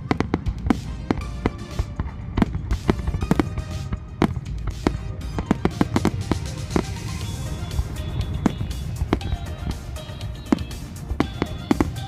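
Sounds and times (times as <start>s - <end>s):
firework shells bursting: 0.0s - 12.0s
music playing: 0.0s - 12.0s.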